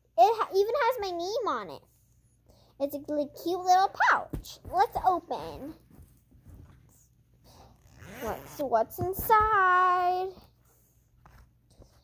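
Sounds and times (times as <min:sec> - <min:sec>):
fabric pouch handling noise: 0:07.8 - 0:08.6.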